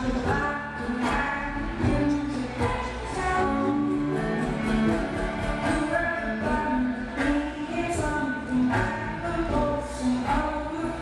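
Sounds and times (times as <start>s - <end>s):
upright bass: 0.0s - 11.0s
voices singing: 0.0s - 11.0s.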